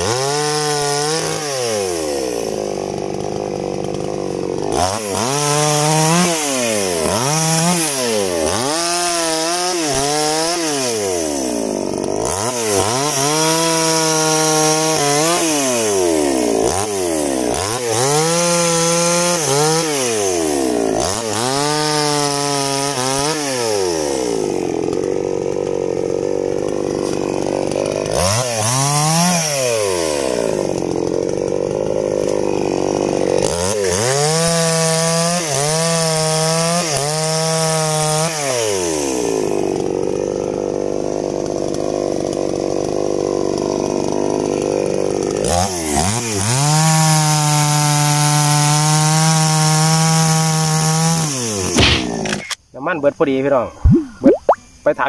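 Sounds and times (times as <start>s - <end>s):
chainsaw cutting wood: 0.0s - 52.7s.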